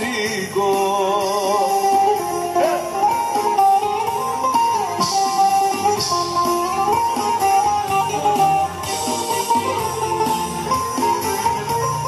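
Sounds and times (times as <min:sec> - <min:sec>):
bouzouki playing plucked melody: 0:00.0 - 0:12.0
live band accompaniment: 0:00.0 - 0:12.0.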